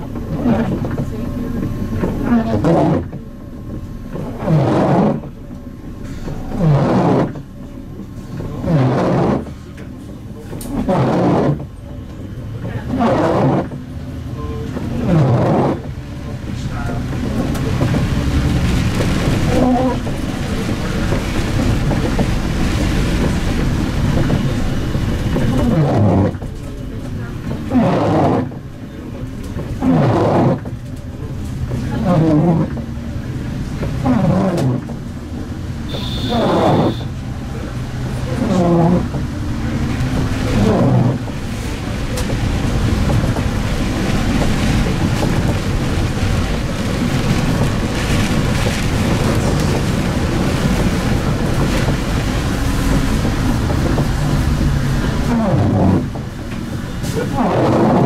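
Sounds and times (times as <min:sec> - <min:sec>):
bus engine: 0:00.0 - 0:58.0
driving noise rush: 0:00.0 - 0:58.0
windscreen wiper groaning on wet glass: 0:00.0 - 0:58.0.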